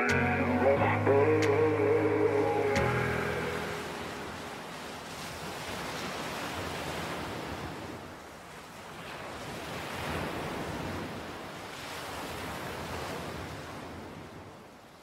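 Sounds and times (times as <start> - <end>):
sea surf rushing: 0.0 - 8.0.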